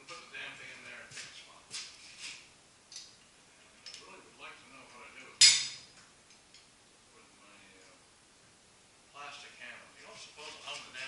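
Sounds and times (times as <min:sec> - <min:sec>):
sharp metal clank: 0:05.4 - 0:05.8.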